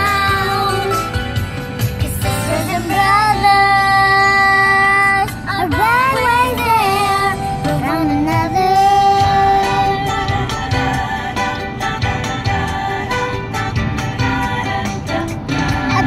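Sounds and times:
girl singing: 0.0s - 0.9s, 2.2s - 10.3s, 15.6s - 16.0s
car cabin rumble: 0.0s - 16.0s.

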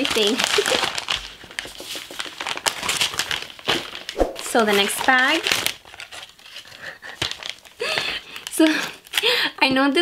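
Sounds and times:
packaging crinkling: 0.0s - 7.8s.

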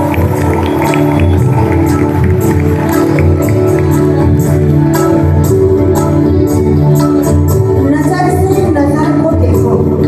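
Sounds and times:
hand percussion and drum beat: 0.0s - 5.7s
held keyboard chords: 0.0s - 10.0s
live band playing: 0.0s - 10.0s.

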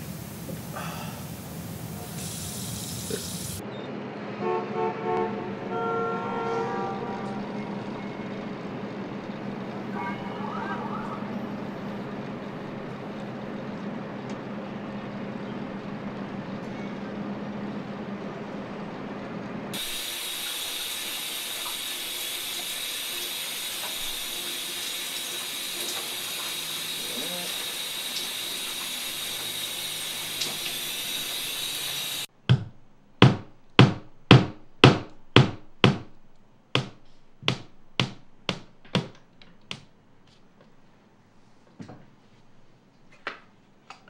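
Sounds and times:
shower spray hissing: 0.0s - 3.6s, 19.8s - 32.3s
steady low hum: 5.3s - 38.6s.

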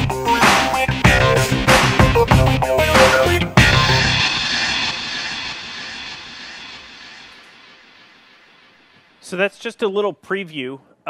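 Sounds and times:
steady rushing noise: 1.4s - 9.3s.

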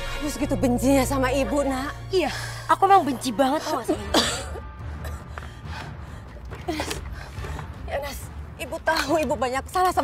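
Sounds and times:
soft background music: 0.0s - 10.0s
woman coughing: 3.8s - 5.3s.

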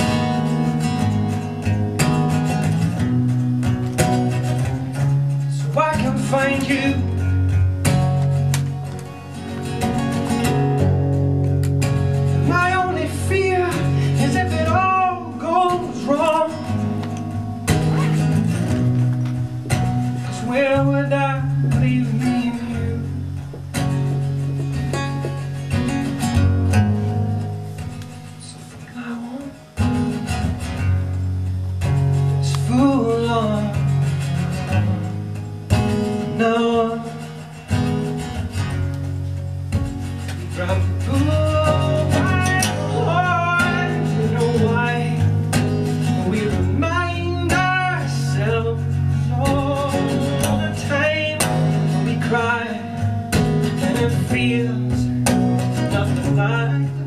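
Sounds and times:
acoustic guitar: 0.0s - 57.0s
wordless singing with vibrato: 5.4s - 7.5s, 12.4s - 17.1s, 20.2s - 23.5s, 28.4s - 29.8s, 32.4s - 35.3s, 36.1s - 37.7s, 40.4s - 57.0s.

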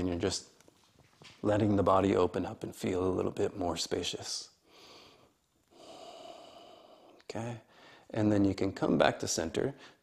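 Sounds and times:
soft breath through nose: 4.6s - 8.1s.

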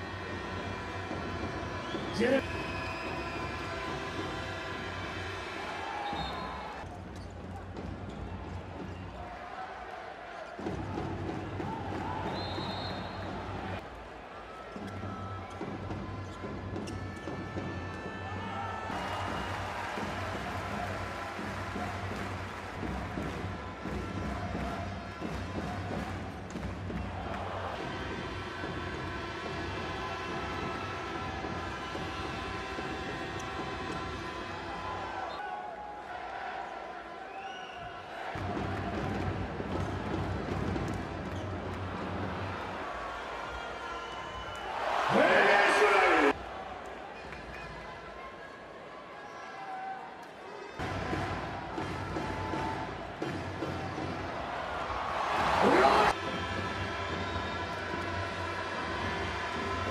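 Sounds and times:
arena crowd noise: 0.0s - 59.9s.

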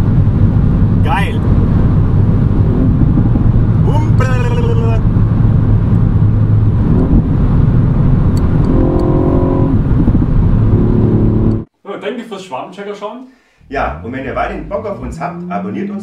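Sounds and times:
car engine drone: 0.0s - 11.7s, 13.6s - 16.0s
wind noise: 0.0s - 11.7s.

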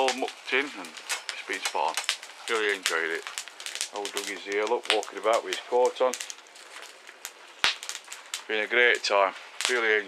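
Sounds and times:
fire crackling in a stove: 0.0s - 10.0s
sharp crack of fire: 0.0s - 10.0s.

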